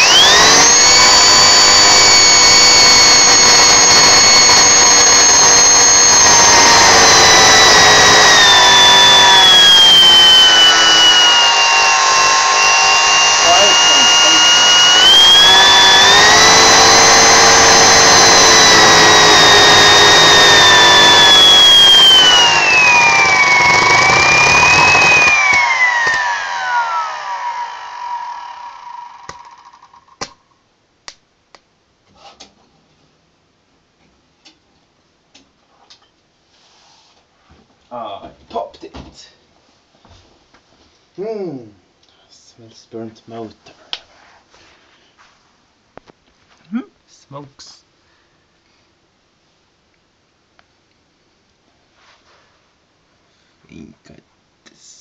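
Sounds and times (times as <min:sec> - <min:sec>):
motor high whine: 0:00.0 - 0:29.8
motor spinning down: 0:00.0 - 0:30.1.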